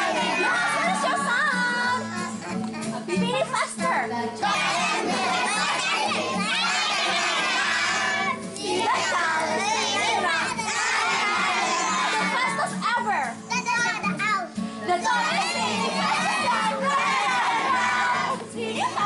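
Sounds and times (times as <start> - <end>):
children shouting: 0.0 - 2.5, 4.4 - 12.7, 15.0 - 19.0
music playing: 0.0 - 19.0.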